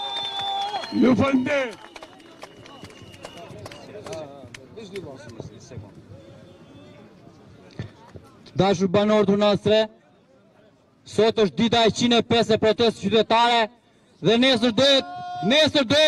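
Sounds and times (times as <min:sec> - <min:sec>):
man speaking into microphone: 0:00.9 - 0:01.7, 0:08.6 - 0:10.0, 0:11.0 - 0:16.0.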